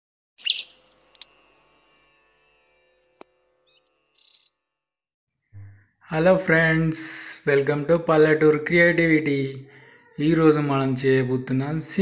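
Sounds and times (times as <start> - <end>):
bright high chirp: 0.4 - 0.8.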